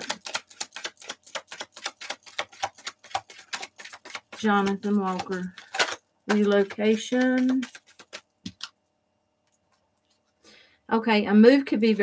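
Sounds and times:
cards being shuffled: 0:00.0 - 0:08.8.

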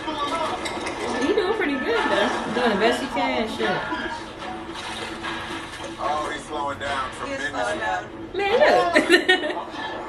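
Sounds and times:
water sloshing and splashing: 0:04.4 - 0:06.2.

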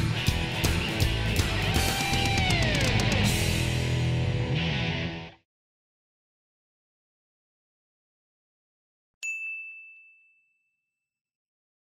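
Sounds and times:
bright chime ding: 0:09.2 - 0:11.1.

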